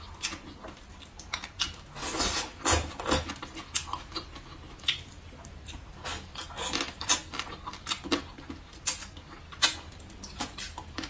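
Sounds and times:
chewing crunches: 0.0s - 11.0s.

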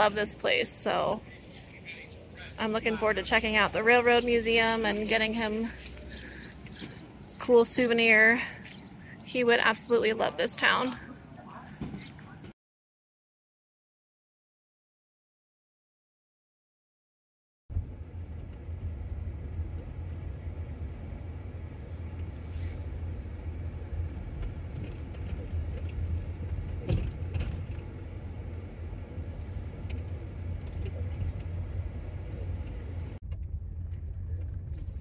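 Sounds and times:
vehicle driving on gravel road: 1.4s - 9.2s, 17.7s - 35.0s.

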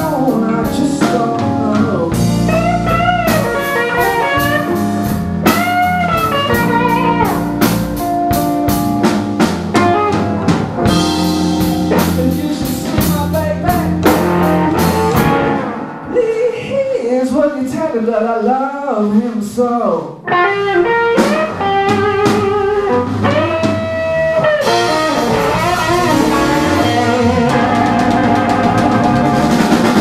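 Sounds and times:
electric guitars: 0.0s - 16.6s, 20.2s - 30.0s
bending lead guitar line: 0.0s - 16.7s, 20.2s - 30.0s
bass and drums: 0.0s - 17.9s, 19.1s - 30.0s.

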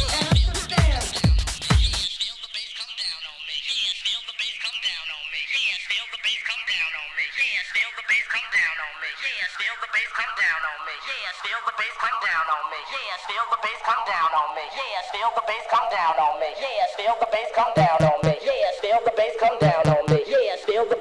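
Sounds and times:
electronic dance music: 0.0s - 2.9s, 4.2s - 21.0s
warbling voice-like melody: 10.8s - 21.0s.

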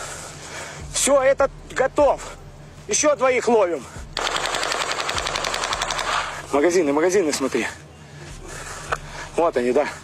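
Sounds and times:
automatic weapon fire: 4.2s - 6.4s.

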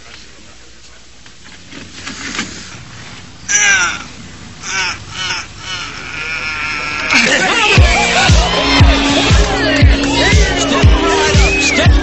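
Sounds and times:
crowd murmur: 3.5s - 12.0s
harsh shouted cries: 3.5s - 12.0s.

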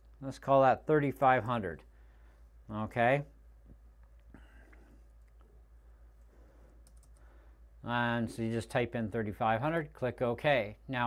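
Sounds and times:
low steady hum: 0.0s - 11.0s
keyboard clicks: 6.8s - 7.2s.

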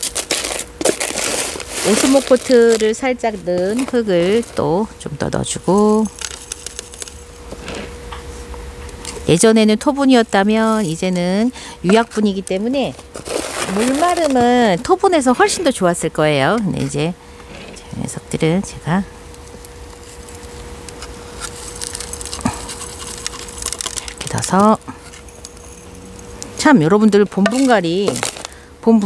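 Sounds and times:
potting mix trickling: 0.0s - 7.4s, 10.1s - 15.8s, 19.3s - 28.8s
faint steady hum: 0.0s - 29.0s.

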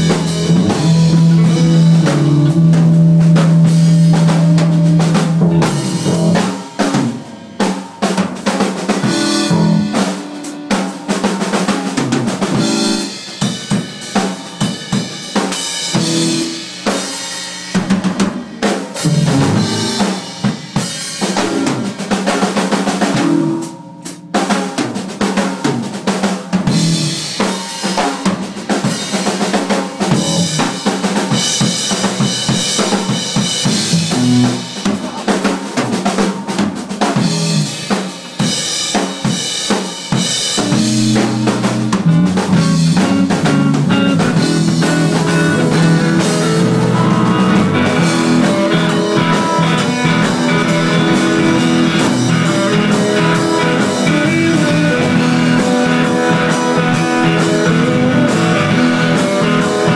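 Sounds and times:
held electric guitar note: 0.0s - 3.0s, 40.6s - 59.9s
rock drum kit playing: 0.0s - 59.9s.

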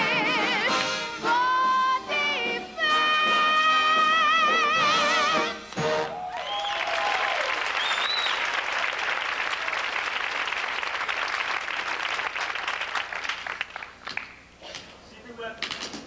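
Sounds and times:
audience cheering: 6.0s - 13.2s
audience applauding: 6.0s - 14.5s.

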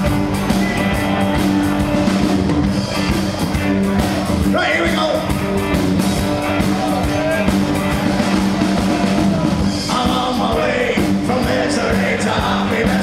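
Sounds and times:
live band music: 0.0s - 13.0s
man singing: 9.8s - 13.0s.

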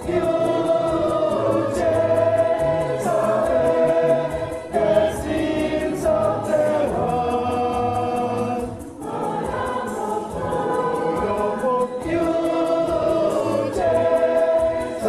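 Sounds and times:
choir and congregation singing a hymn: 0.0s - 15.0s.

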